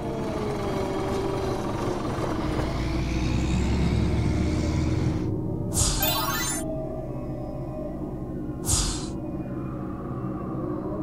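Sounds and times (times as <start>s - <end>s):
cartoon machine whirr: 5.9s - 6.6s.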